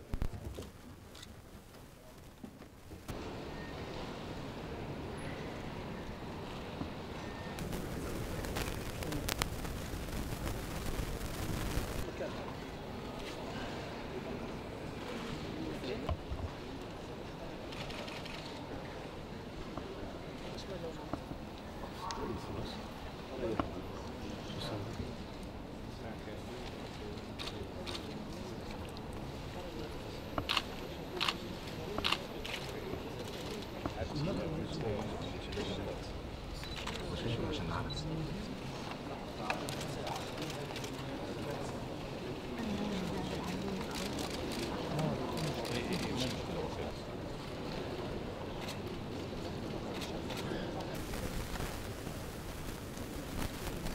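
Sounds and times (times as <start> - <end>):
murmur of voices: 3.1 - 53.9.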